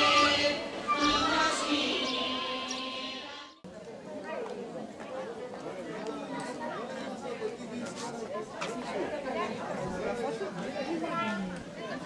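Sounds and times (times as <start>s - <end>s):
women chattering: 8.1s - 12.0s.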